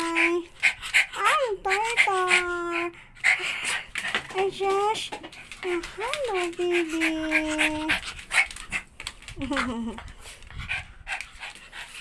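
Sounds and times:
dog panting: 0.0s - 12.0s.

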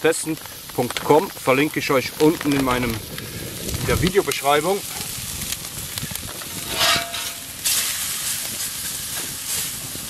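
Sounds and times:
food sizzling on a hot plate: 0.0s - 10.0s
steak frying on a griddle: 0.0s - 10.0s.

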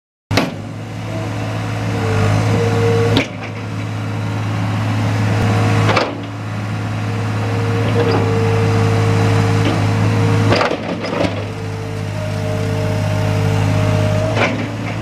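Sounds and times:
diesel engine running: 0.3s - 15.0s.

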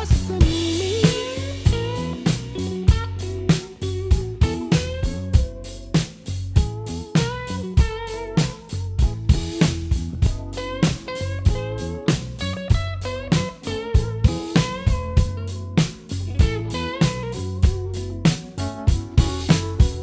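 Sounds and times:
electric guitar solo: 0.0s - 6.0s, 6.6s - 20.0s
drum kit groove: 0.0s - 20.0s.

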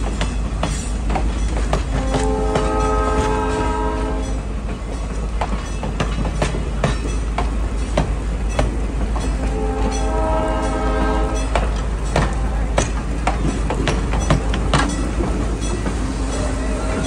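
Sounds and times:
train wheels clickety-clack: 0.0s - 17.0s
train horn: 1.8s - 4.5s, 9.2s - 12.7s, 14.2s - 17.0s.

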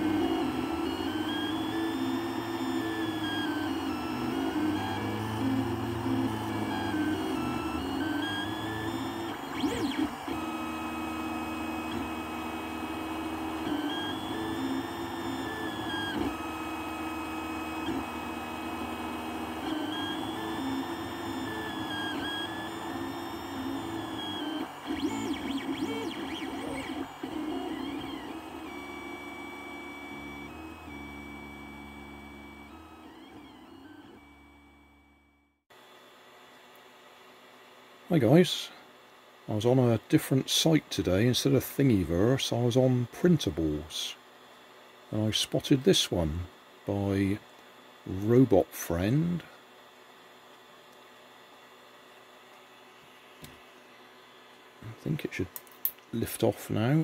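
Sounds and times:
printer stepper motors whining: 0.0s - 35.4s.

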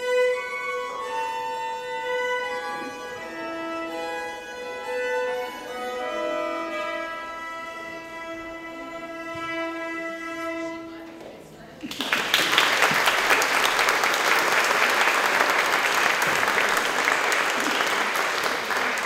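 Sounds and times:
fiddles playing a waltz: 0.0s - 11.3s.

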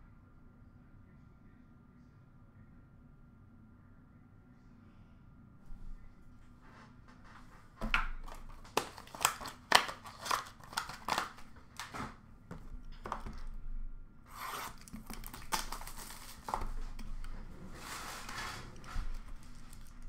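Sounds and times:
packaging crinkling and rustling: 7.2s - 13.6s, 14.3s - 20.0s
cardboard and wrapper ripping: 7.8s - 12.2s, 12.9s - 13.5s, 14.3s - 20.0s.

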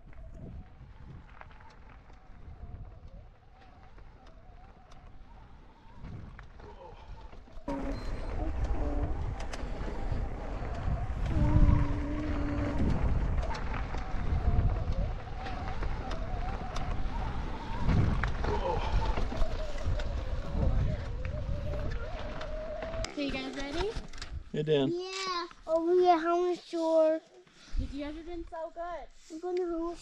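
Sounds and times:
bike tyres rumbling over dirt: 0.0s - 24.2s
wind buffeting microphone: 0.0s - 24.5s
thin wavering tone: 7.7s - 12.8s.

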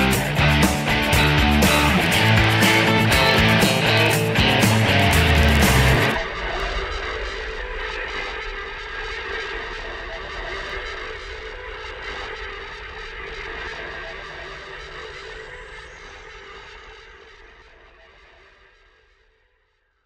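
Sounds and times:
electric guitar chord ringing: 0.0s - 6.2s.

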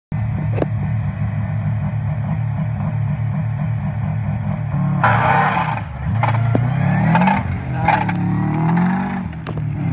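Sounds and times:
rally car engine idling: 0.1s - 9.9s.

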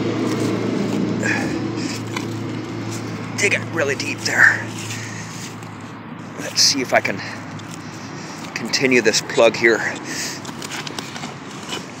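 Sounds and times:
shovel blade crunching soil: 0.0s - 12.0s
shovel scraping dirt: 0.0s - 12.0s.

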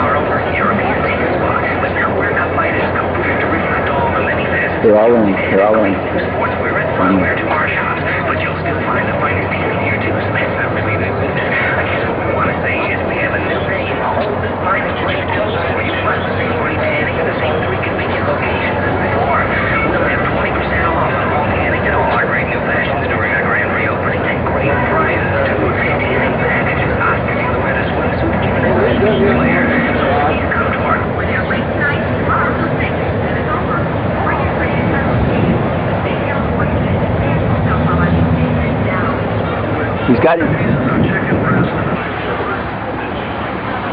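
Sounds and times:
indistinct voices: 0.0s - 43.9s
outdoor rumble: 0.0s - 43.9s.

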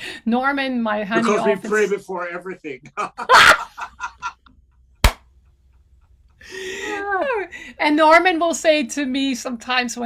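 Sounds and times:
person laughing: 2.9s - 4.4s
sharp tap: 5.0s - 5.3s.

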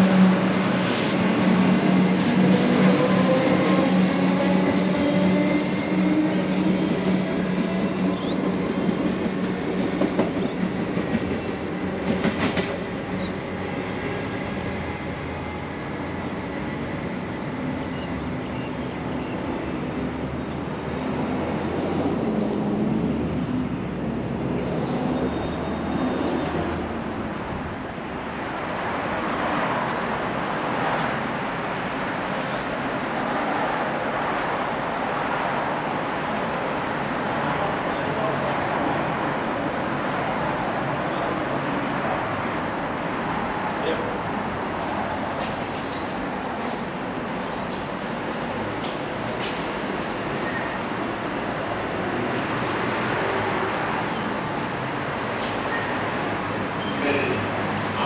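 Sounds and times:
steady background noise: 0.0s - 58.0s.

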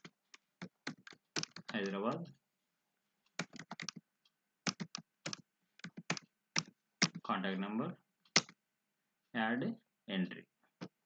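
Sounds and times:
computer keyboard typing: 0.0s - 2.2s, 3.4s - 4.0s, 4.6s - 7.2s, 8.3s - 8.6s.

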